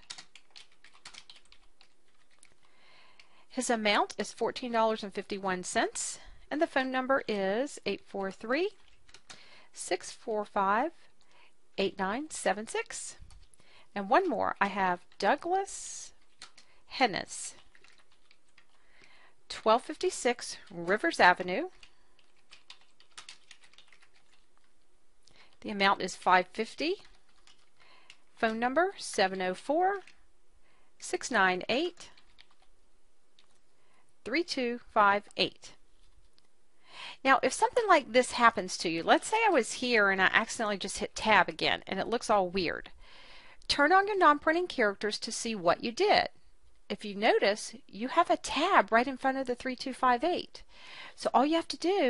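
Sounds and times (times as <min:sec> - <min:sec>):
typing on computer keyboard: 0:00.0 - 0:03.4, 0:08.2 - 0:09.5, 0:13.2 - 0:13.6, 0:16.2 - 0:16.7, 0:17.4 - 0:19.2, 0:20.6 - 0:24.8, 0:26.9 - 0:28.3, 0:31.9 - 0:32.7.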